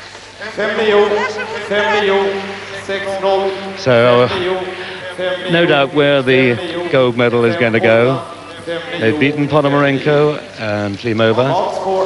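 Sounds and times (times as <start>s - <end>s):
person speaking: 0.4s - 12.0s.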